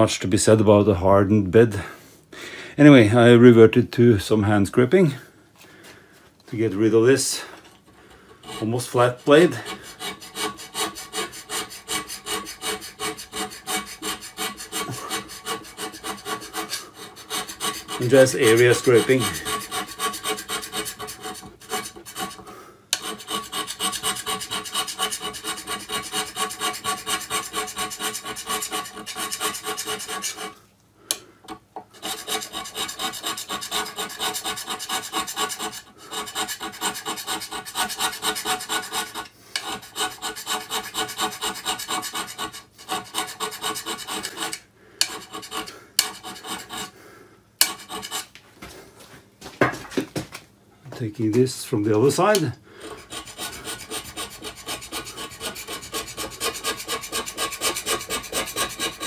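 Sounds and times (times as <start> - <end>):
hand scraper rasping on metal: 8.4 - 30.6, 31.9 - 47.0, 47.6 - 48.3, 51.9 - 59.0.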